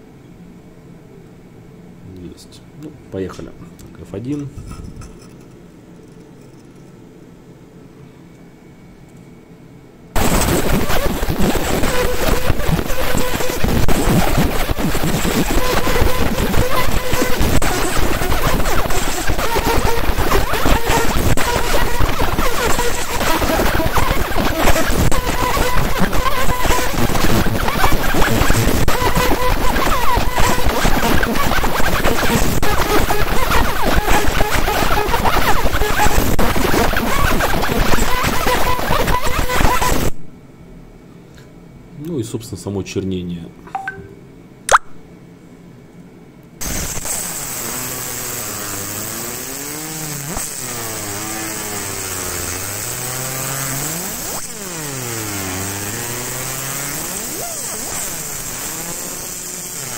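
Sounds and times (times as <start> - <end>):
laser crackle of rapid popping: 10.2 - 40.2, 46.6 - 59.9.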